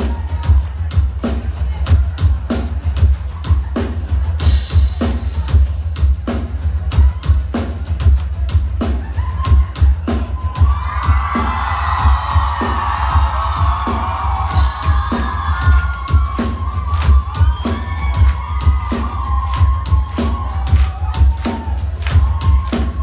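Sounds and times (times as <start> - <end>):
crowd cheering and whooping: 0.0 - 4.6, 8.8 - 23.0
live rock band: 0.0 - 23.0.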